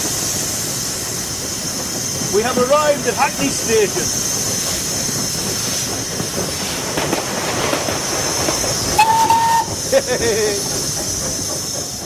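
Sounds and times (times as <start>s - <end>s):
steam locomotive hiss and rattle: 0.0s - 12.0s
steam whistle blast: 9.0s - 9.8s.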